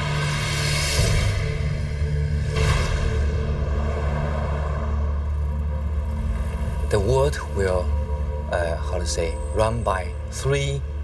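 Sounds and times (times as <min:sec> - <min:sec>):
low music drone: 0:00.0 - 0:11.0
road traffic rumble: 0:03.2 - 0:11.0.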